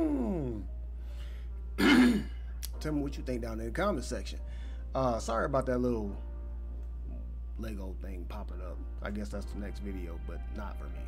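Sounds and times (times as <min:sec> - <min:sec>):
man clearing throat: 0:01.8 - 0:02.4
man speaking: 0:07.6 - 0:11.0.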